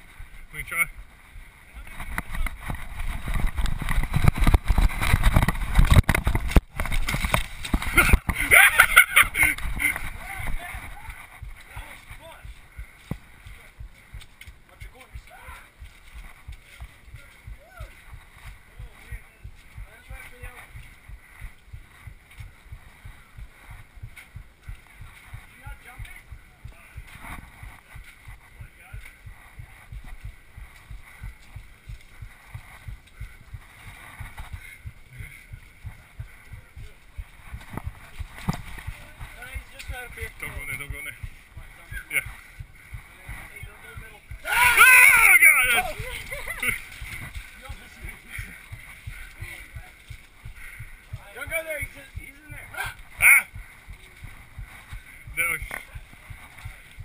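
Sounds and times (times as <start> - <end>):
muffled footsteps on dirt: 0.0 - 57.0
indistinct voices: 16.4 - 57.0.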